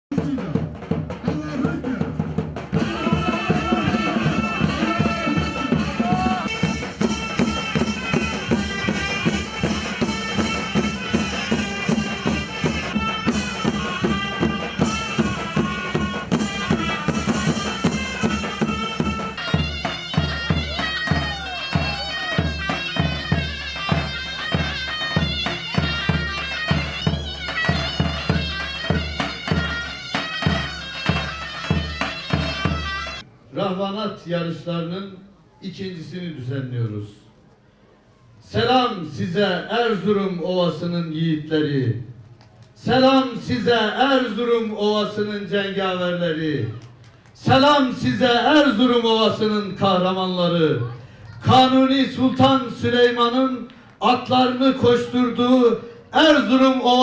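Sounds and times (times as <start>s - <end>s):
davul drums beating: 0.1s - 33.2s, 47.4s - 50.1s, 51.3s - 57.0s
shrill zurnas playing melody: 2.7s - 33.3s.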